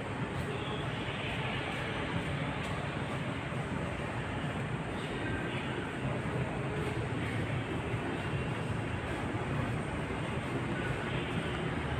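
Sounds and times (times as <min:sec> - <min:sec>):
urban background rumble: 0:00.0 - 0:11.9.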